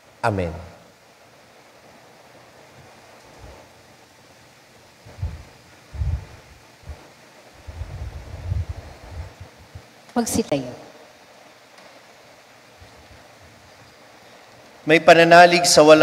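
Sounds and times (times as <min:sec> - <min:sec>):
microphone hiss: 0:00.0 - 0:16.0
low thumps on microphone: 0:05.1 - 0:07.0.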